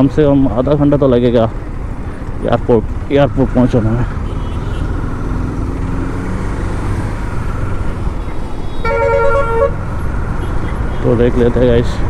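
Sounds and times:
vehicle horn: 0:08.7 - 0:11.1.

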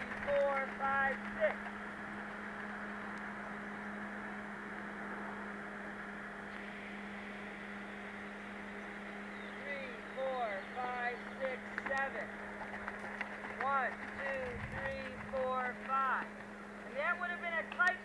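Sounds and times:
person's voice: 0:00.0 - 0:01.6
steady low hum: 0:00.0 - 0:18.0.

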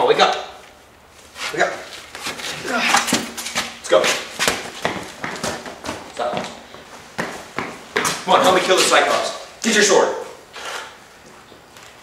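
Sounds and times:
footsteps on hard floor: 0:02.0 - 0:09.2.

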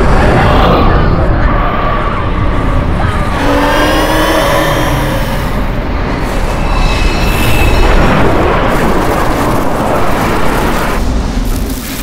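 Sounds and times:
roaring rush with deep rumble: 0:00.0 - 0:12.0
wavering screeching glides: 0:03.1 - 0:08.3.

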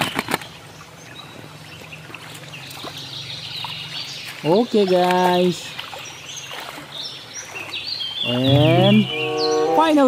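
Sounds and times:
water trickling over stones: 0:00.0 - 0:08.3.

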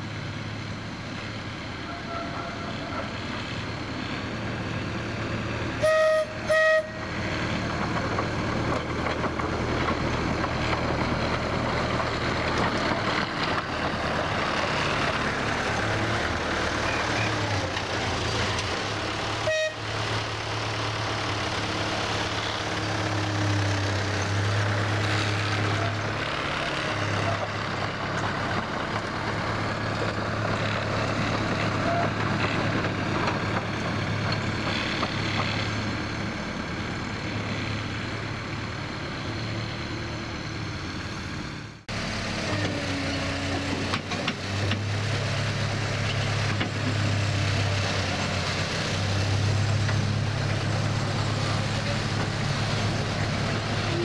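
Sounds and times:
miniature locomotive engine drone: 0:00.0 - 0:54.0
short train toots: 0:01.9 - 0:03.0, 0:05.8 - 0:07.1, 0:19.4 - 0:19.9.

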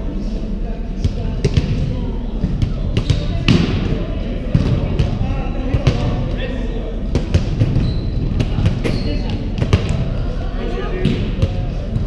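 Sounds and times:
players chatting: 0:00.0 - 0:12.0
volleyballs being hit and bouncing: 0:01.0 - 0:12.0.

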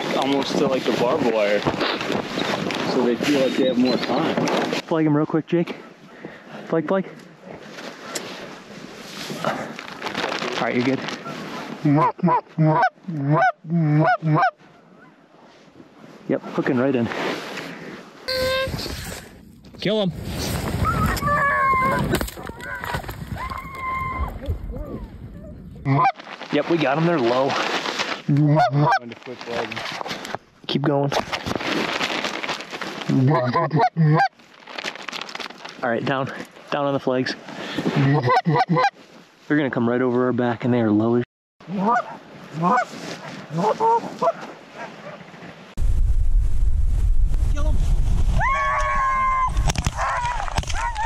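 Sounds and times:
clothing rustling on microphone: 0:00.0 - 0:04.9
wind rushing over microphone: 0:20.1 - 0:25.9, 0:45.8 - 0:51.0.

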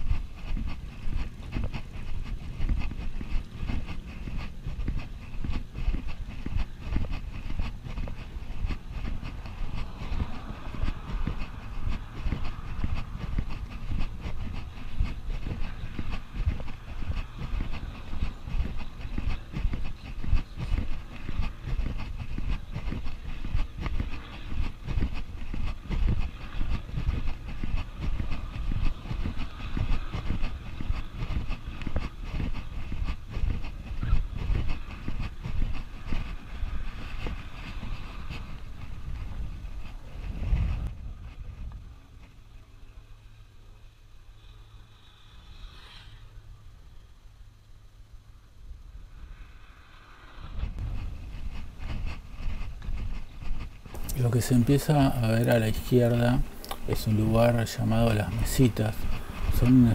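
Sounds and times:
wind buffeting microphone: 0:00.0 - 0:42.5, 0:50.2 - 0:59.9.

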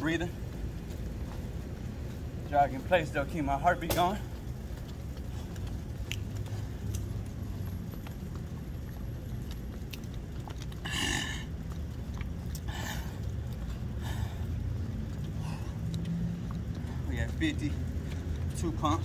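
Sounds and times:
steady low rumble: 0:00.0 - 0:19.0
man breathing hard: 0:10.8 - 0:11.6, 0:12.5 - 0:17.1.

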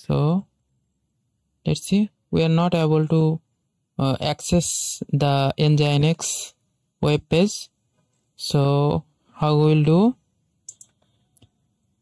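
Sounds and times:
faint computer clicks: 0:10.6 - 0:11.6.

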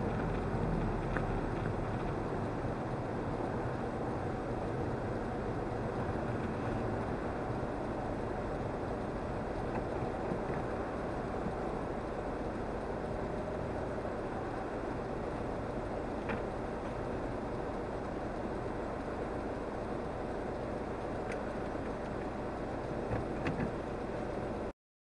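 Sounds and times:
car engine and cabin rumble: 0:00.0 - 0:24.7.

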